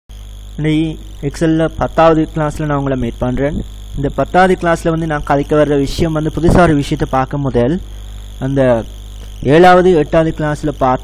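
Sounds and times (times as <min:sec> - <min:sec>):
electrical mains hum: 0:00.1 - 0:11.0.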